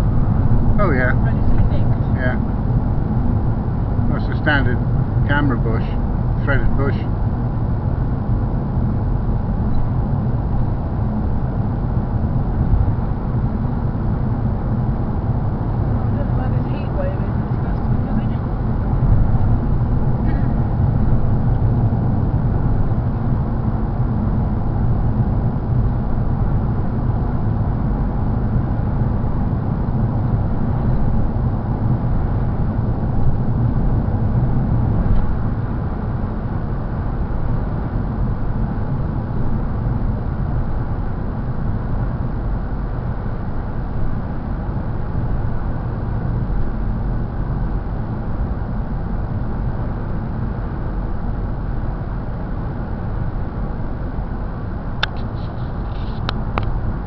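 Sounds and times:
car interior road rumble: 0.0 - 57.0.

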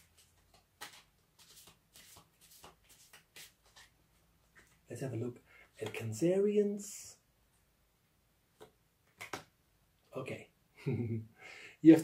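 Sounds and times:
cards being shuffled: 0.0 - 4.8, 8.6 - 9.5.

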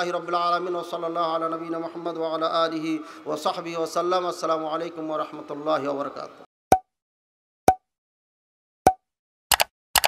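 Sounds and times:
pop sound effects: 8.9 - 9.1
paired clicks: 9.5 - 10.0.

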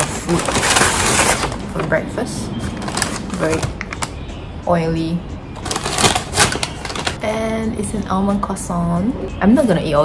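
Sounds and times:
paper bag crinkling: 0.0 - 1.7, 5.6 - 7.2.

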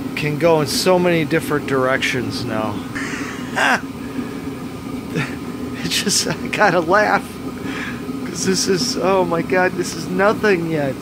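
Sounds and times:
breathy chuckle: 3.0 - 3.8.

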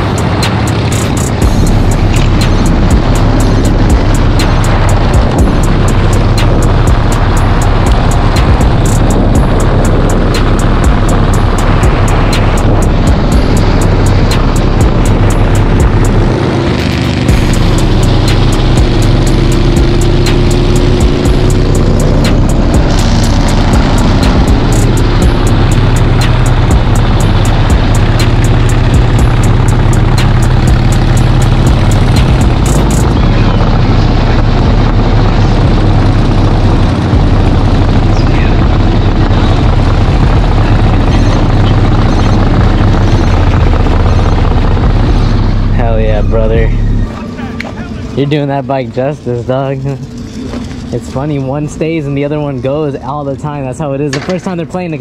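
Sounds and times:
wind noise: 0.0 - 47.2
background music: 0.0 - 48.5
motorcycle passing by: 0.0 - 53.4
motorcycle engines: 0.0 - 55.0.

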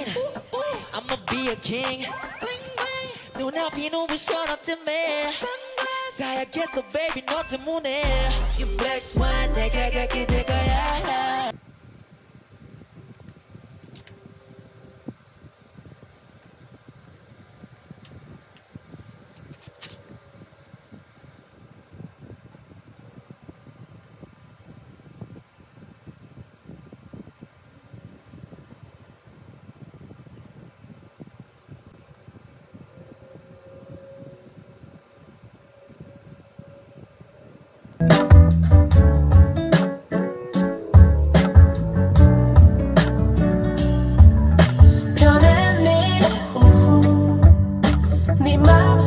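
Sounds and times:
fan-like room noise: 0.0 - 49.0.

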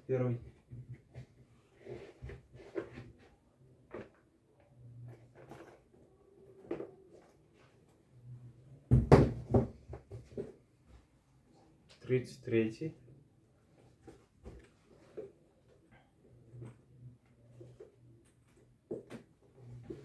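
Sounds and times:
shoes rustling and knocking: 8.9 - 11.1, 13.8 - 15.4.

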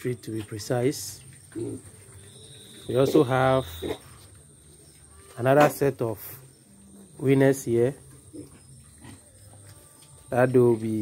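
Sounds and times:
pigs grunting while feeding: 0.3 - 4.4, 6.2 - 10.8.

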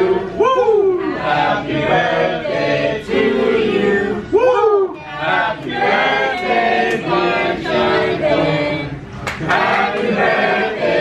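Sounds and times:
group singing a birthday song: 0.0 - 11.0.

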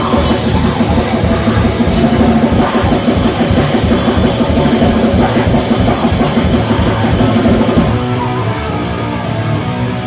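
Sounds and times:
drum kit: 0.0 - 8.5
punk band playing live: 0.0 - 10.0.

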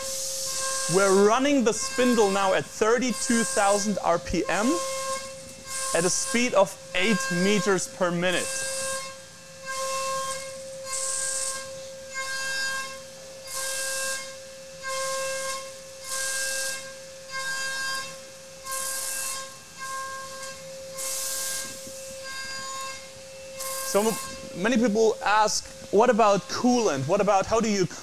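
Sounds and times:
cutter hissing into metal: 0.0 - 28.0
milling spindle high whine: 0.0 - 28.0.

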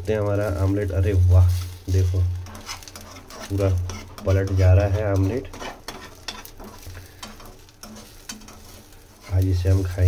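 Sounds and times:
omelette sizzling in pan: 0.0 - 10.0
steel spoon scraping pan: 1.5 - 10.0.

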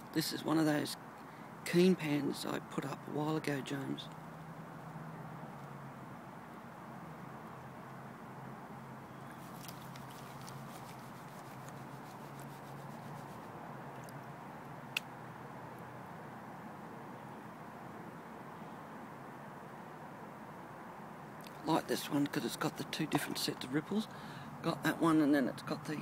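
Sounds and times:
water and sand sloshing in pan: 9.3 - 12.4.

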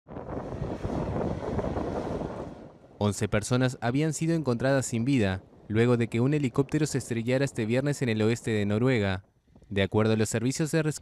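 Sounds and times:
wind buffeting microphone: 0.1 - 9.9.

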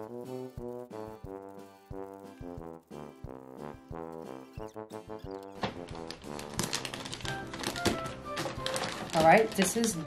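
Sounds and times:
music with brass-like tones: 0.0 - 6.9
wrapping paper crackling: 5.6 - 10.0.

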